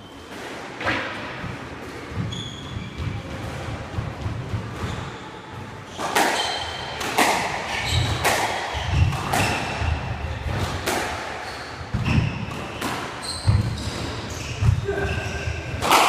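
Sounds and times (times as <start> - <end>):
shoes squeaking on wooden floor: 2.1 - 3.3, 7.7 - 10.0, 11.4 - 15.7
squash ball cracking off rackets: 6.0 - 9.8.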